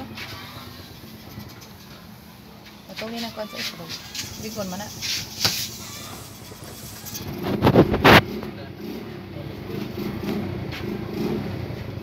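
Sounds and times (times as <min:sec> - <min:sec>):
engine droning: 0:04.1 - 0:12.0.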